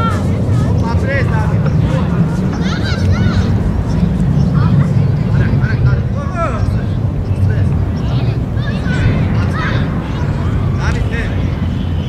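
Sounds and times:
children shouting: 0:00.0 - 0:01.0, 0:01.9 - 0:05.2, 0:07.8 - 0:12.0
steady low rumble: 0:00.0 - 0:12.0.

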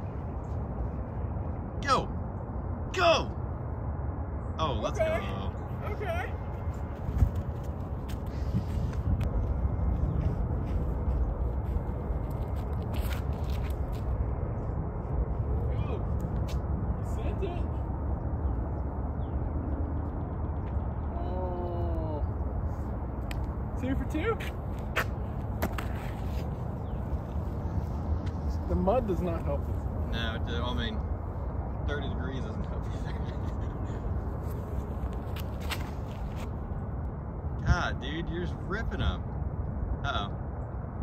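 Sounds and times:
wind rumble on microphone: 0:03.8 - 0:41.0.

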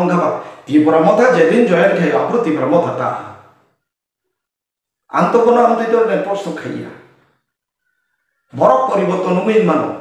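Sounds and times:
man's voice: 0:00.0 - 0:03.5, 0:05.1 - 0:07.1, 0:08.5 - 0:10.0.

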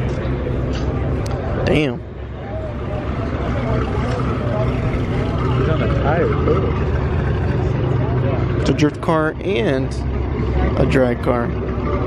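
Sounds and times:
car engine idling: 0:00.0 - 0:12.0
people talking: 0:00.0 - 0:12.0.

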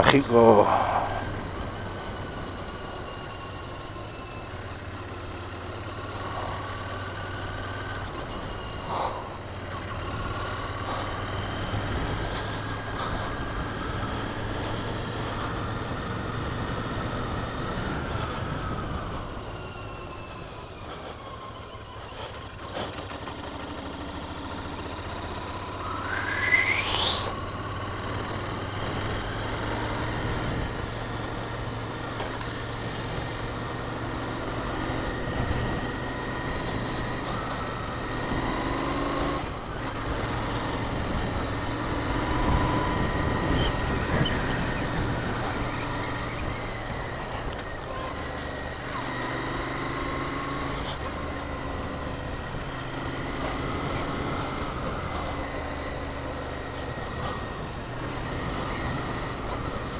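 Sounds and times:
motorcycle engine running: 0:00.0 - 0:59.9.

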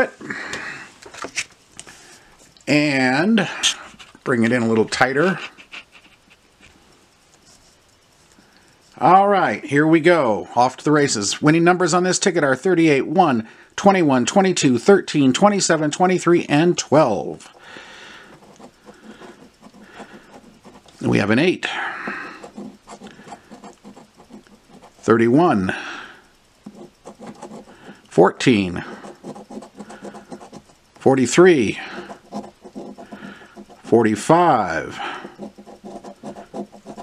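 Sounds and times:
coin scratching lottery ticket: 0:05.0 - 0:06.6, 0:18.1 - 0:25.6, 0:26.7 - 0:37.0.

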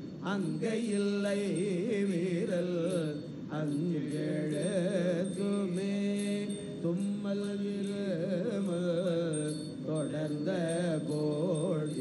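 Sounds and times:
priests chanting: 0:00.4 - 0:12.0.

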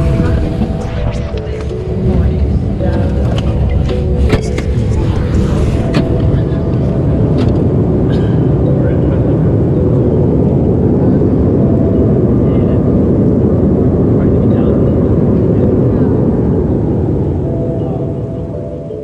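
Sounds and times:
jet cabin engine roar: 0:00.0 - 0:19.0.

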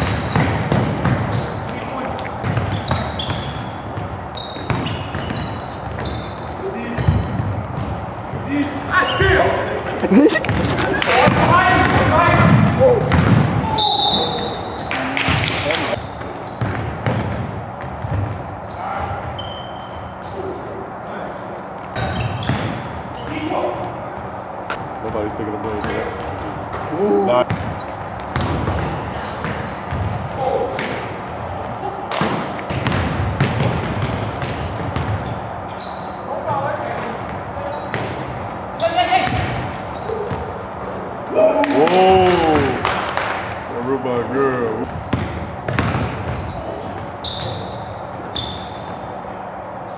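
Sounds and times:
basketball bouncing: 0:00.0 - 0:08.4, 0:10.1 - 0:14.3, 0:15.2 - 0:18.5, 0:21.9 - 0:23.0, 0:24.7 - 0:31.3, 0:32.1 - 0:35.5, 0:36.9 - 0:40.6, 0:44.2 - 0:49.1
sneakers squeaking: 0:00.0 - 0:49.9
players' voices: 0:06.1 - 0:16.2, 0:18.5 - 0:47.7
voices and laughter: 0:09.9 - 0:11.4.

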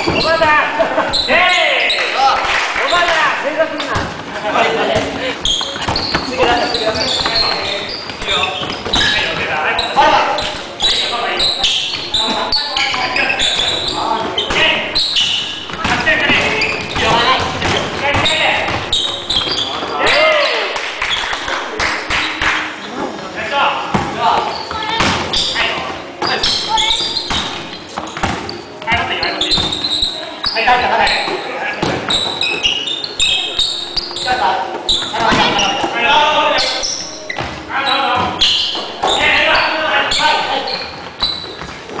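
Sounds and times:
sneakers squeaking: 0:00.0 - 0:42.0.

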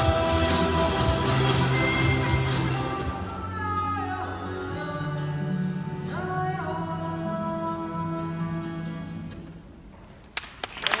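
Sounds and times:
audience applause: 0:10.4 - 0:11.0.

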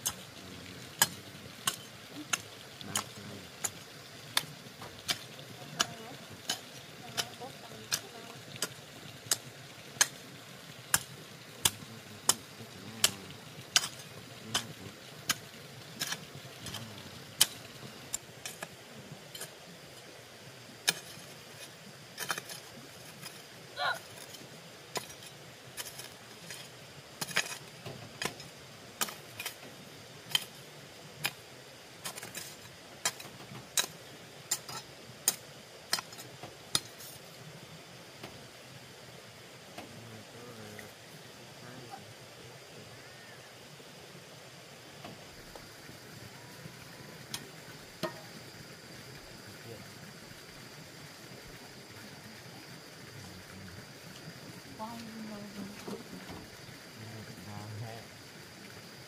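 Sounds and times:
hoe chopping stony soil: 0:10.9 - 0:18.8, 0:20.8 - 0:23.4, 0:24.0 - 0:29.6, 0:32.0 - 0:37.1.

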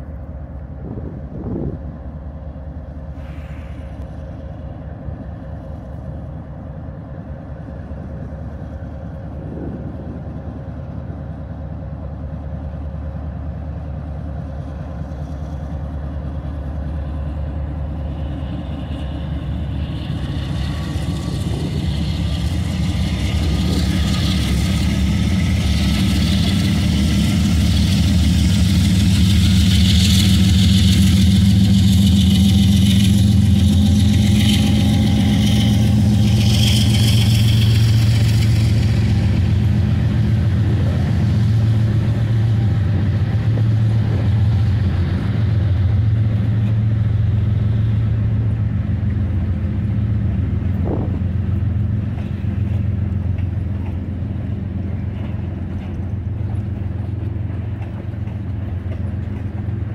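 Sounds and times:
diesel locomotive engines droning: 0:00.0 - 0:59.9.

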